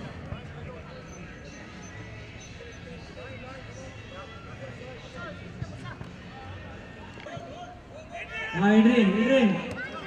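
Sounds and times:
people chattering and calling: 0.0 - 10.0.

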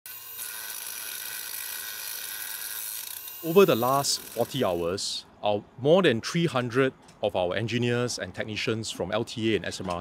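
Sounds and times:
angle grinder grinding steel: 0.1 - 4.9.

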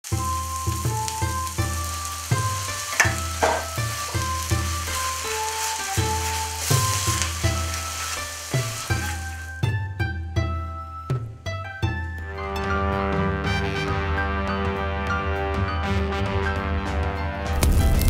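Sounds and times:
food sizzling in a wok: 0.0 - 9.8
background music with plucked notes: 0.0 - 18.0
wooden spatula stirring: 0.6 - 9.6.

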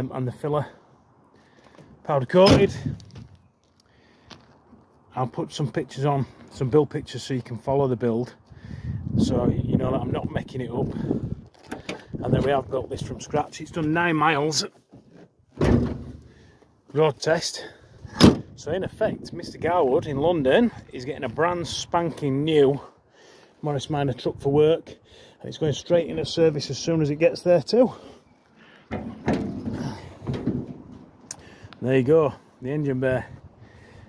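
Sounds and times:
car door shutting with a thunk: 18.1 - 18.4
metal panel rubbing and clattering: 28.9 - 31.1.

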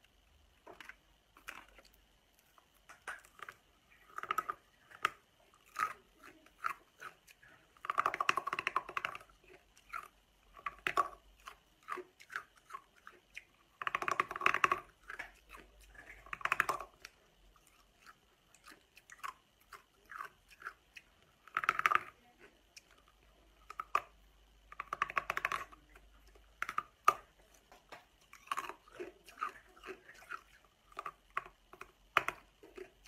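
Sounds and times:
ice crunching between teeth: 28.2 - 33.0.

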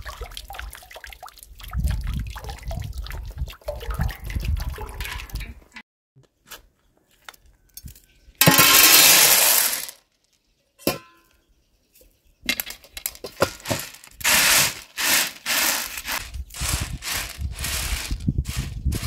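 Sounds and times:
chickpeas poured onto metal tray: 8.4 - 10.0, 13.6 - 19.0
chickpeas scraping on metal: 8.4 - 10.0, 13.4 - 19.0.

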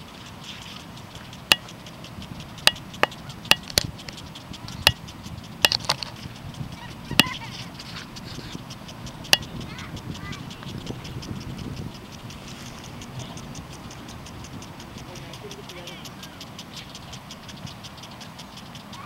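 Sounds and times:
lawn sprinkler clicks: 0.0 - 19.0
water spray hissing: 0.0 - 19.0.

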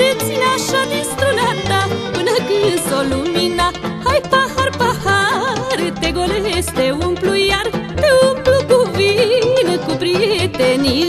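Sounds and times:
folk band instrumental music: 0.0 - 11.0.

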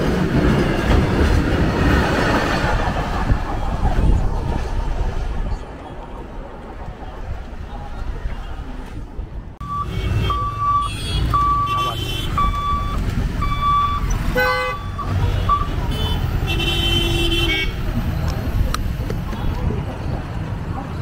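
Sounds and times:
road traffic engines: 0.0 - 21.0.

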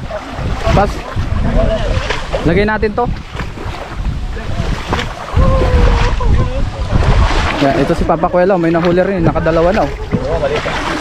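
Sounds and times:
people wading through water: 0.0 - 11.0
wind buffeting microphone: 0.0 - 11.0.

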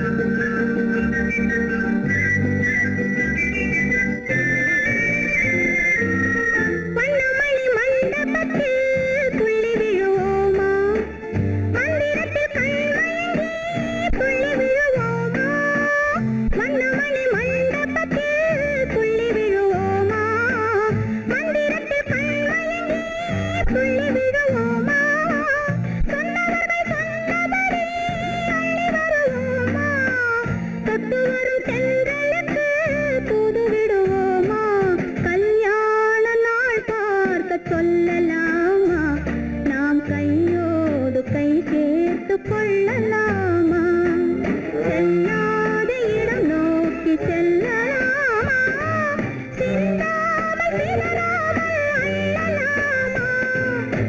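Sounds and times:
plucked guitar and bass chords: 0.0 - 35.4, 37.4 - 54.0
woman singing film song: 3.7 - 54.0.

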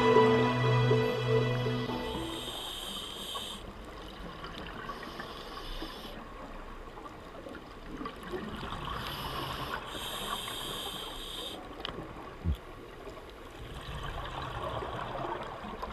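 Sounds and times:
regulator hissing inhalations: 1.9 - 3.7, 5.0 - 6.2, 9.0 - 11.6.

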